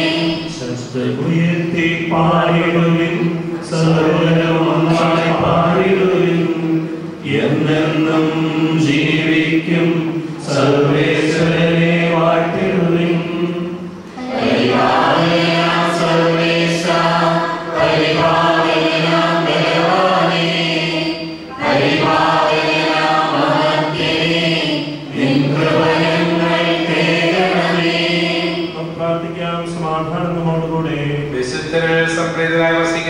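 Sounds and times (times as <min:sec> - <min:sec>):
man chanting into a microphone: 0:00.0 - 0:14.0, 0:28.5 - 0:33.0.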